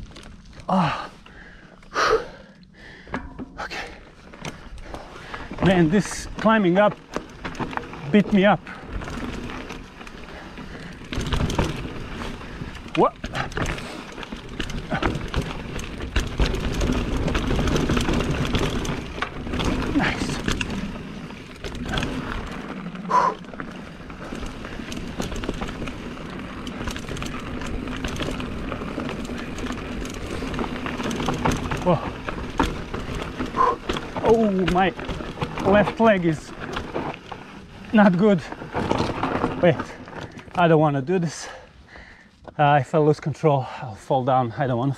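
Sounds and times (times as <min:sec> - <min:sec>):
bike tyres on dirt: 0:00.0 - 0:44.9
bike knocks and rattles: 0:03.0 - 0:41.0.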